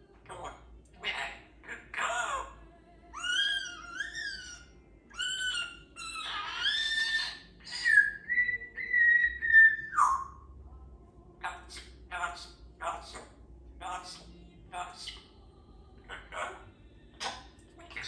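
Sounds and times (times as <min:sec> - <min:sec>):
parrot whistling and chattering: 0:03.1 - 0:10.4.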